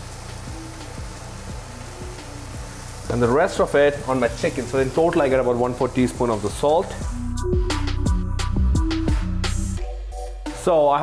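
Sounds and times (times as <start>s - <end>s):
food sizzling in a pan: 0.0s - 7.3s
quiet background music: 0.0s - 11.0s.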